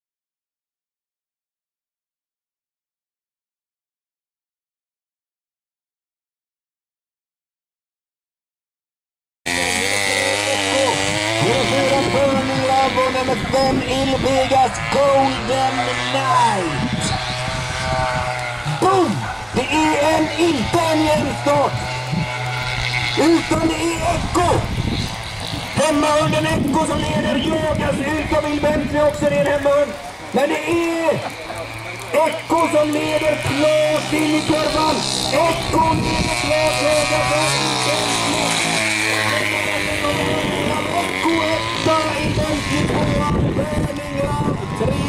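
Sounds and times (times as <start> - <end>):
mechanical lure motor whine: 9.5 - 45.0
race commentator speaking: 9.9 - 17.4, 18.7 - 22.0, 23.1 - 24.8, 25.7 - 45.0.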